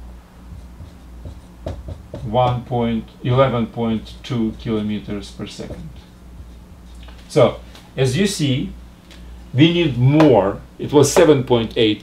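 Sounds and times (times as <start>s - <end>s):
low steady hum: 0.0s - 12.0s
marker rubbing on whiteboard: 0.5s - 7.0s.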